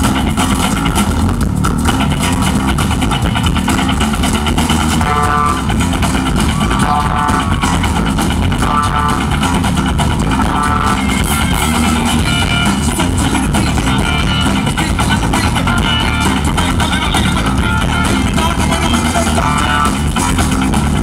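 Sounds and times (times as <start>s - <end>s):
rock band playing live: 0.0s - 21.0s.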